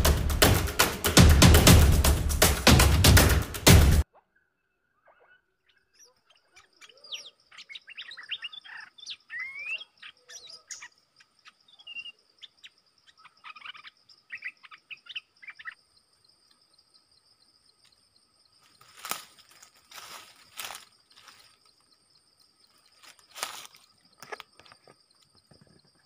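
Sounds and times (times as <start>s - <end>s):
birds whistling and chattering: 5.0s - 15.8s
high insect drone: 15.4s - 26.0s.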